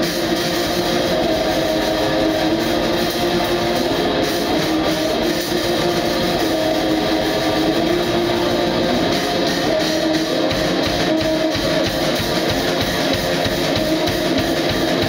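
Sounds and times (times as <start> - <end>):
distorted electric guitar: 0.0 - 15.0
fast dense drumming: 0.0 - 15.0.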